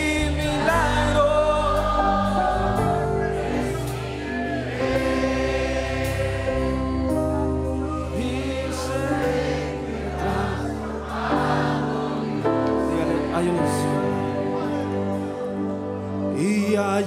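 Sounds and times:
congregation singing: 0.0s - 17.0s.

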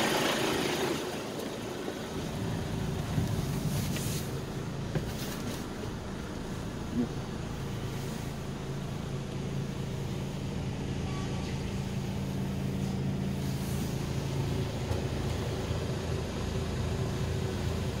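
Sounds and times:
diesel engine idling: 0.0s - 18.0s.

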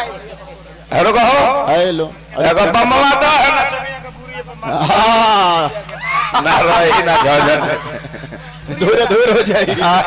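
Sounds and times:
man mock crying: 4.7s - 10.0s.

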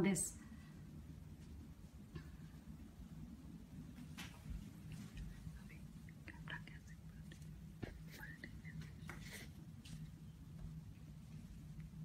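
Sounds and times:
low steady hum: 0.0s - 12.0s
faint whisper-like voice: 5.0s - 9.6s.

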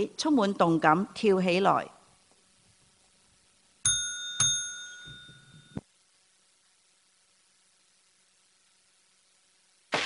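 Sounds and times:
bell-like chime strikes: 3.9s - 5.8s.

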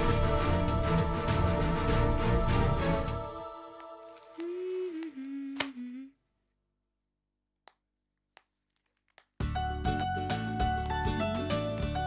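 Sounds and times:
background music held note: 0.0s - 5.2s.

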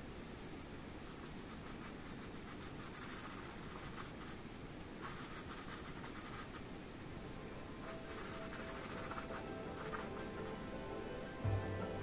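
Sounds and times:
room hiss: 0.0s - 12.0s
paintbrush stroking canvas: 0.2s - 4.4s, 5.0s - 6.7s, 7.8s - 10.6s.

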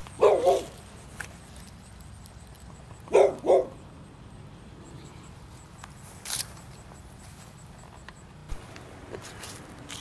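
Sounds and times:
dog barking: 0.2s - 0.8s, 3.1s - 3.8s.

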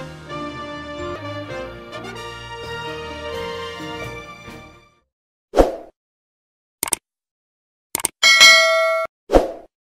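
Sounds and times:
notification bell ding: 8.2s - 9.1s.

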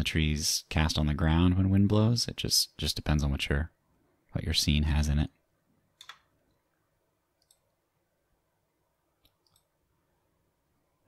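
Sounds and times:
computer mouse clicks: 6.0s - 6.3s, 7.4s - 7.8s, 9.2s - 9.7s.

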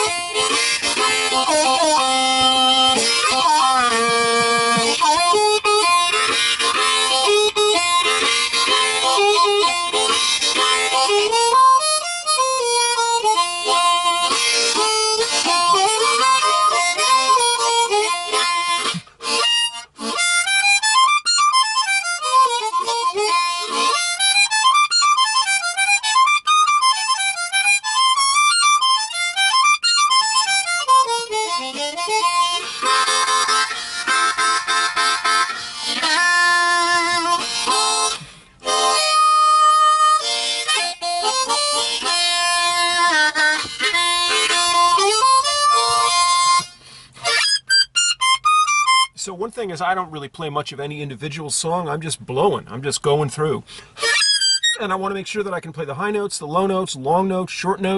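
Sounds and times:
blues harmonica solo: 0.0s - 50.0s, 51.2s - 57.9s.

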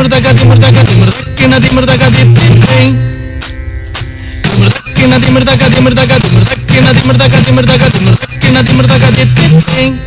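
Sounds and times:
dance accompaniment music: 0.0s - 10.0s
sharp percussive stroke: 0.9s - 7.1s.

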